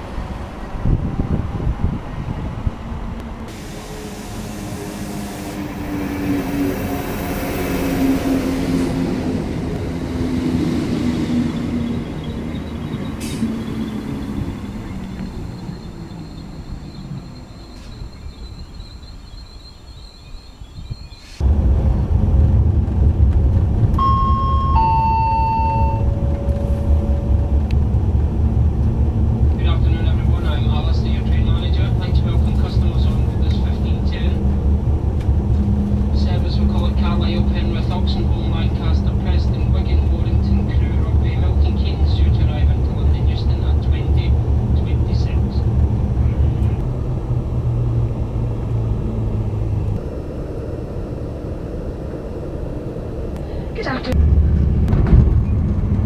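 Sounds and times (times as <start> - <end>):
train carriage hum and rumble: 0.0 - 56.0
two-note falling chime: 24.0 - 27.4
indistinct voices: 53.4 - 54.2.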